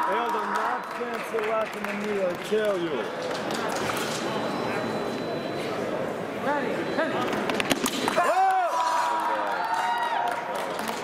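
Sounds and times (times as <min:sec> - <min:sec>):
crowd chatter in a large hall: 0:00.0 - 0:11.0.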